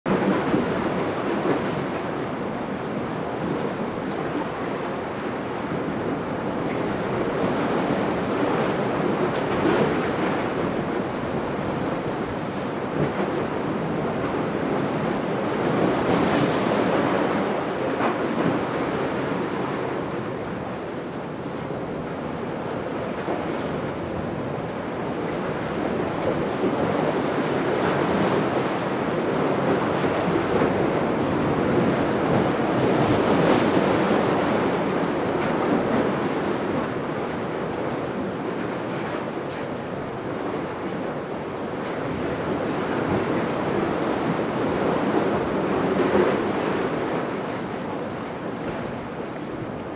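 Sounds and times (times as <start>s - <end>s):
churning sea water: 0.1s - 49.9s.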